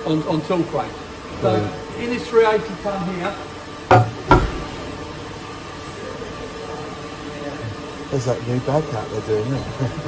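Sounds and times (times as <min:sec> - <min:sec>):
machinery hum and hiss: 0:00.0 - 0:10.0
sharp knocks: 0:03.9 - 0:04.8.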